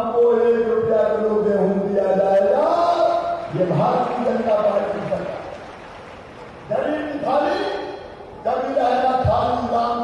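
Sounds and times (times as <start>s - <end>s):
man shouting through microphones: 6.7s - 10.0s.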